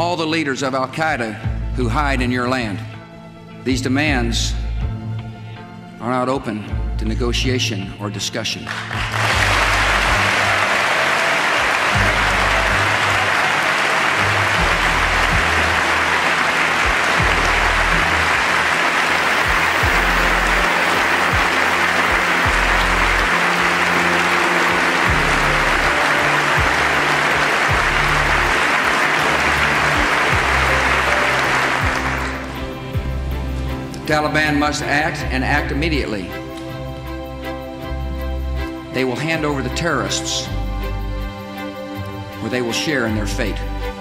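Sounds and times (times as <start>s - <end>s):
background music: 0.0s - 44.0s
audience applause: 8.7s - 33.2s.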